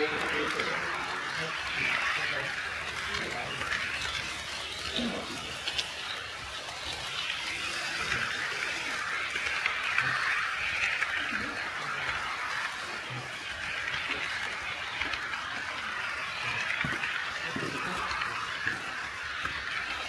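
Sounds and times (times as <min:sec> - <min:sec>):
faint voices: 0:00.0 - 0:20.0
model train whirring: 0:00.0 - 0:20.0.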